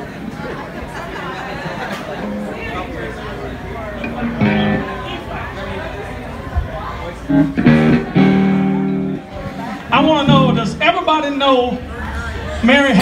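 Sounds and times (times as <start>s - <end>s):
people talking: 0.0s - 13.0s
electric guitar held chords: 2.2s - 6.5s, 7.2s - 10.8s.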